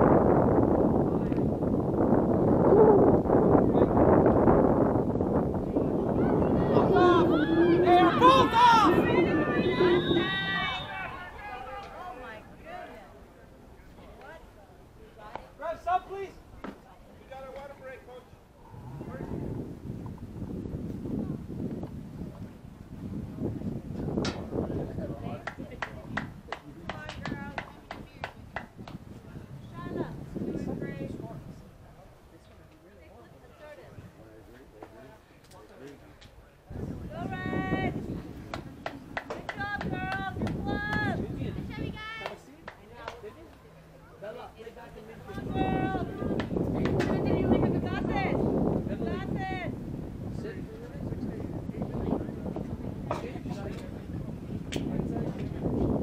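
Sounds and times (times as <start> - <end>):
voices calling out: 5.7 - 16.8.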